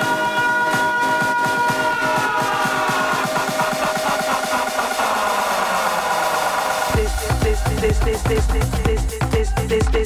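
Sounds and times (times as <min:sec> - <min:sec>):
electronic dance music: 0:00.0 - 0:10.0
heavy bass beat: 0:00.0 - 0:10.0.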